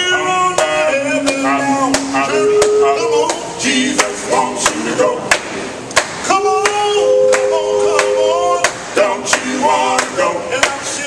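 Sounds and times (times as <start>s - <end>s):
male a cappella group singing: 0.0s - 5.6s, 6.2s - 11.0s
sharp hand claps: 4.0s - 10.8s.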